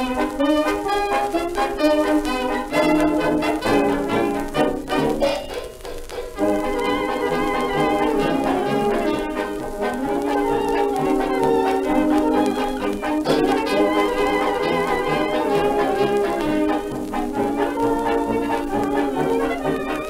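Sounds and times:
dance orchestra with brass: 0.0 - 20.0
record surface hiss: 0.0 - 20.0.

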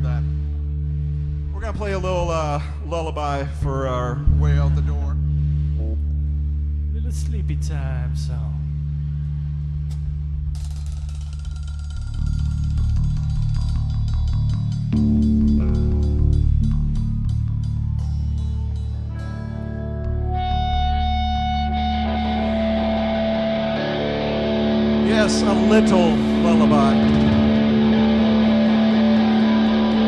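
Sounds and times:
low bass drone: 0.0 - 30.0
electric guitars playing: 12.1 - 30.0.

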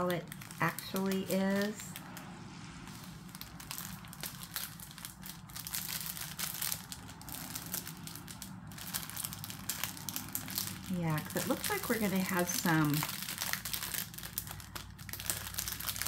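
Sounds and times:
plastic packets crinkling: 0.0 - 16.0.

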